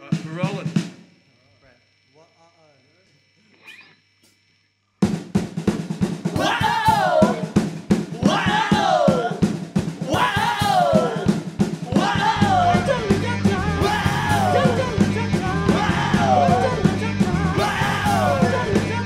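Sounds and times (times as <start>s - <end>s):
fast drumming on a drum kit: 0.0s - 1.1s, 5.0s - 19.0s
rock band playing: 9.8s - 19.0s.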